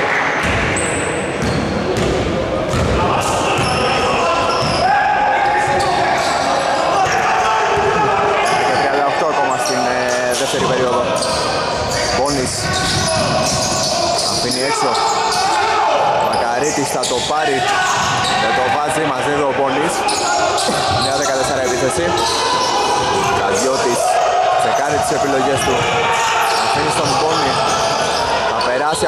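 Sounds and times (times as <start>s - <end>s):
players calling out: 0.0s - 29.0s
basketball bouncing on hardwood: 1.4s - 3.0s.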